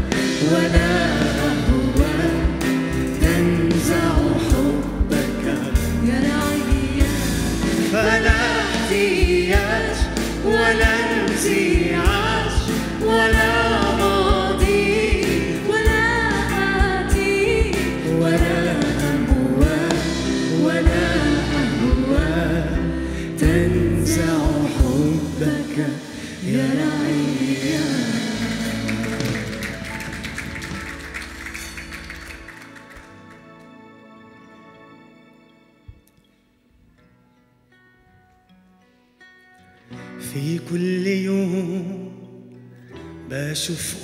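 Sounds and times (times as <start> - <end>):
people singing: 0.0 - 29.7
worship band playing: 0.0 - 36.3.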